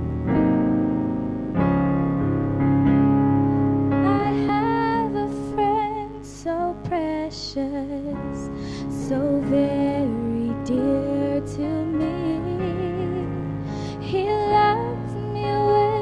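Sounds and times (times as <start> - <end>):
electric keyboard chords: 0.0 - 16.0
girl singing into microphone: 4.0 - 16.0.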